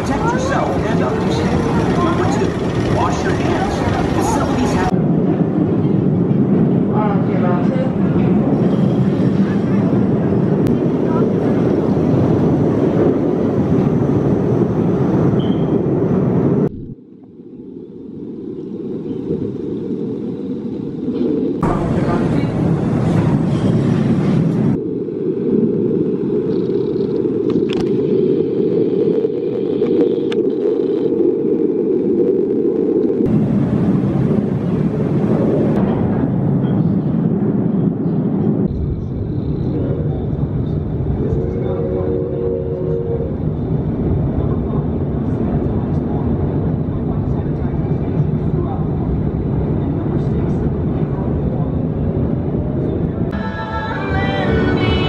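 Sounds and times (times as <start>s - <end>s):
voices: 0.0s - 5.0s, 5.7s - 13.0s, 21.6s - 24.0s, 36.6s - 55.0s
roller coaster rumble: 0.0s - 17.1s, 17.9s - 55.0s.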